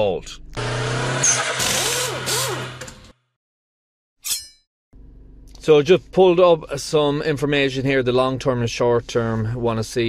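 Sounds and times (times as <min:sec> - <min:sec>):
steady low hum: 0:05.0 - 0:10.0.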